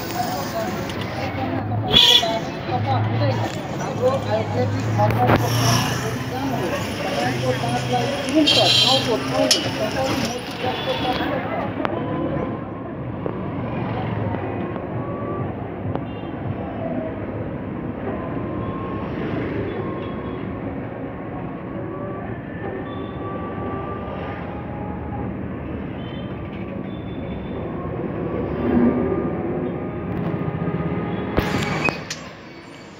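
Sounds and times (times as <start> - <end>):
vehicles passing: 0.0 - 32.9.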